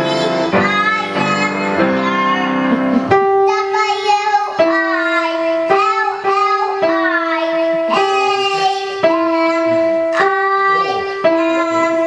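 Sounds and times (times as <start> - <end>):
child singing: 0.0 - 12.0.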